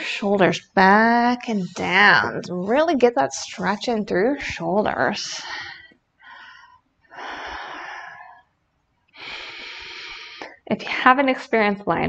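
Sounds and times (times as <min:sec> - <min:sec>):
woman breathing: 0:05.3 - 0:08.5, 0:09.2 - 0:10.6.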